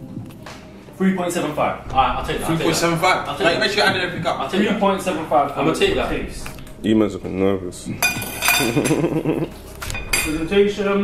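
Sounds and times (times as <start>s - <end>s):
man laughing: 8.6s - 9.6s.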